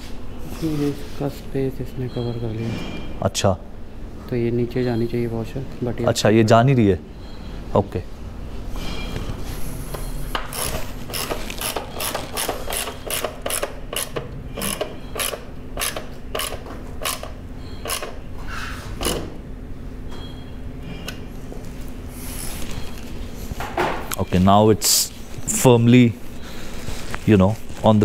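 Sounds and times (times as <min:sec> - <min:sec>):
ratchet wrench clicking: 0:10.5 - 0:18.2.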